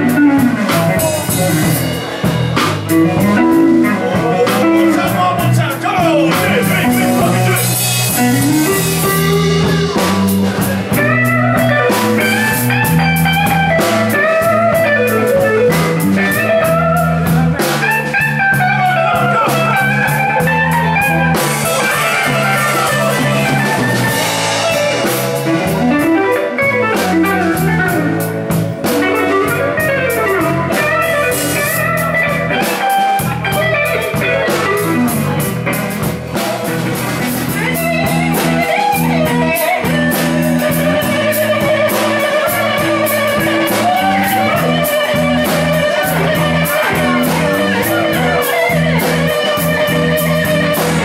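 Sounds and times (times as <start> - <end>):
drum kit cymbal and snare: 0.0 - 51.0
electric guitar bending notes: 0.0 - 51.0
live blues band: 0.0 - 51.0
walking bass line: 0.0 - 51.0.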